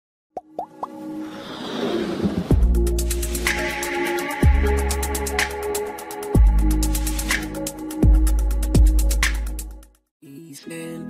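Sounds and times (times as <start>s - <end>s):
quick rising pops: 0.4s - 2.6s
swell of music: 1.0s - 9.5s
hiss: 1.2s - 2.5s.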